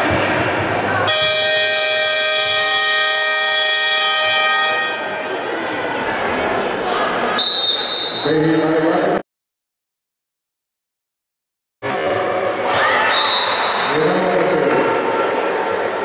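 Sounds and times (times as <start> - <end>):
crowd chatter: 0.0 - 9.2, 11.8 - 16.0
horn steady blast: 1.0 - 5.1.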